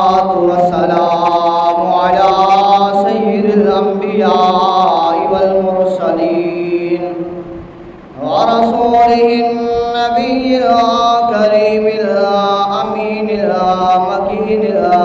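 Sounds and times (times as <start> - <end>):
man chanting into a microphone: 0.0 - 7.5, 8.2 - 15.0.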